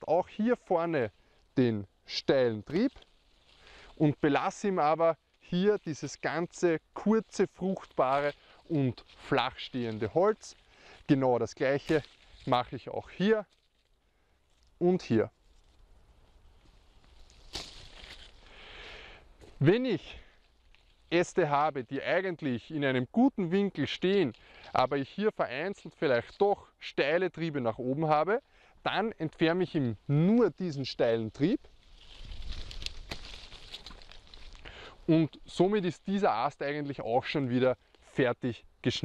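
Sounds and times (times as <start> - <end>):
leaves rustling: 0.0 - 26.6, 27.2 - 39.0
pruning shears snip: 17.5 - 18.3, 32.7 - 34.0.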